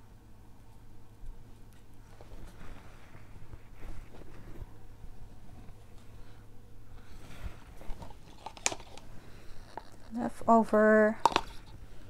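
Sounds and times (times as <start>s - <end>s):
plastic cups tapping and rustling: 7.8s - 10.1s, 11.2s - 11.8s.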